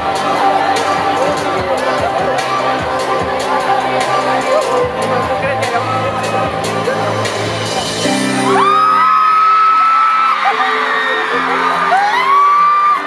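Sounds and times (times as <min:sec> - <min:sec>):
fans screaming and whooping: 0:00.0 - 0:07.3, 0:08.0 - 0:13.0
live pop band playing: 0:00.0 - 0:13.0.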